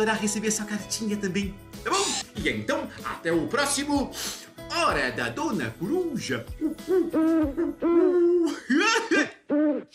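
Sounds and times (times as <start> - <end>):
man imitating owl hoots: 6.6 - 8.5, 9.5 - 9.9.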